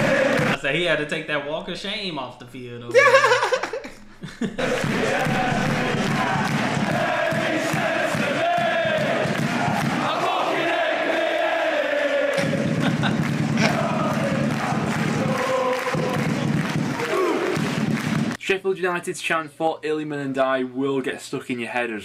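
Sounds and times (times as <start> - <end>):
crowd singing a chant: 0.0 - 0.6, 4.6 - 17.6.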